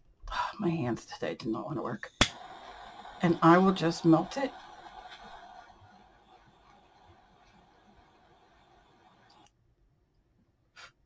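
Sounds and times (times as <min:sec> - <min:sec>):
torch lighter flame hissing: 0:02.2 - 0:09.5.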